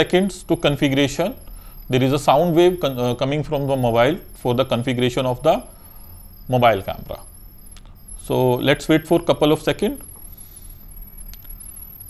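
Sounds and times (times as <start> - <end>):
high-pitched pulsing data tone: 0.0 - 12.0.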